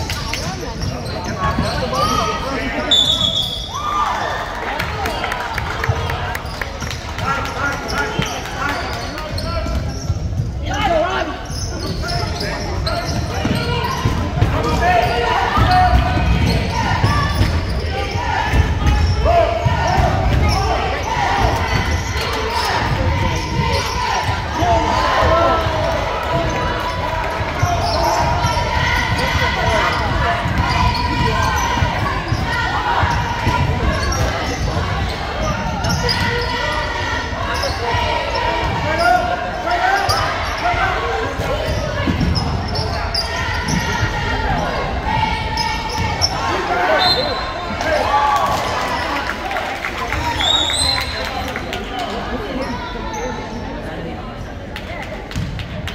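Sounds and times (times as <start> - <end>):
voices in large gym hall: 0.0 - 55.9.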